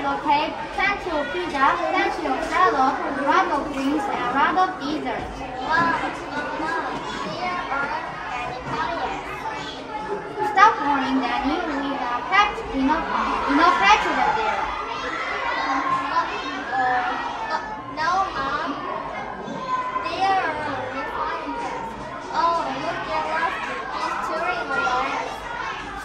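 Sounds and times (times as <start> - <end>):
children chattering: 0.0 - 26.0.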